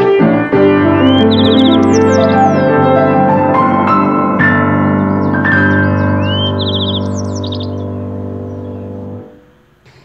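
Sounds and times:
held piano chord: 0.0s - 9.5s
birds chirping: 0.0s - 10.0s.

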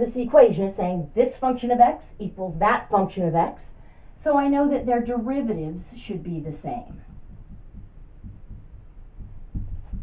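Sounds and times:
marker tapping on whiteboard: 7.0s - 10.0s.

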